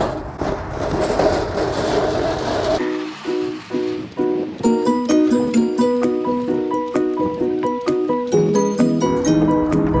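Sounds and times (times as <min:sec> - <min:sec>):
light plucked-string music: 0:02.8 - 0:10.0.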